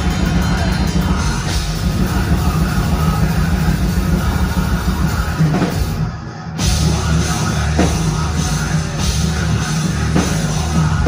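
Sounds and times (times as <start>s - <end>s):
live metal band heavy drone: 0.0s - 11.0s.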